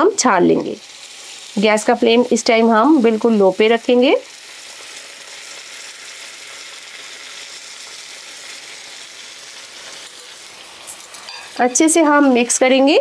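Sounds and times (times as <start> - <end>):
food sizzling in a pan: 0.0 - 13.0
liquid poured into hot oil: 0.7 - 1.6, 4.2 - 11.6.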